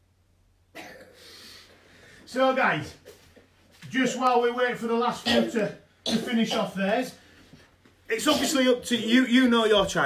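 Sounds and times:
person coughing: 0:00.8 - 0:01.3, 0:05.2 - 0:06.8, 0:08.2 - 0:09.3.

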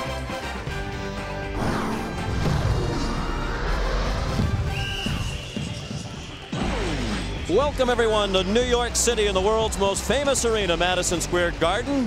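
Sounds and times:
sports intro music: 0:00.0 - 0:12.0.

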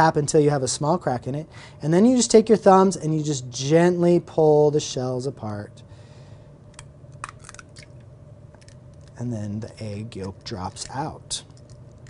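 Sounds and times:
steady low hum: 0:00.0 - 0:12.0
eggshell crackling: 0:06.7 - 0:12.0.

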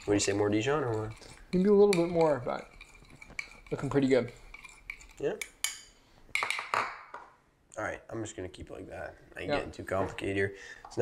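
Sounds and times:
spoon stirring sauce in bowl: 0:00.0 - 0:06.6.

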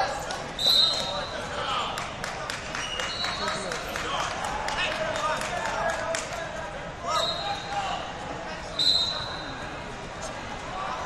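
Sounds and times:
echoing crowd chatter: 0:00.0 - 0:11.0
referee whistle blasts: 0:00.6 - 0:01.3, 0:07.1 - 0:07.7, 0:08.8 - 0:09.5.

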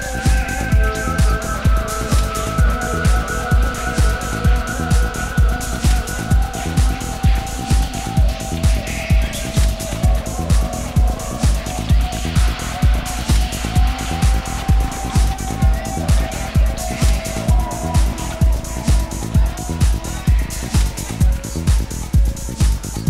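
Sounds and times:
electronic dance music: 0:00.0 - 0:23.0
hissing noise swell: 0:00.0 - 0:23.0.

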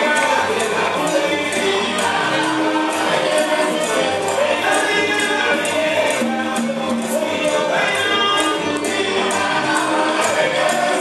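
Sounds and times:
hand percussion: 0:00.0 - 0:11.0
voices singing together: 0:00.0 - 0:11.0.

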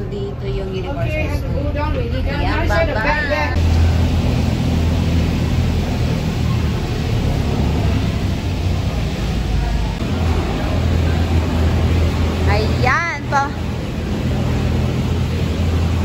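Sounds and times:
cable car machinery rumble: 0:00.0 - 0:16.0.

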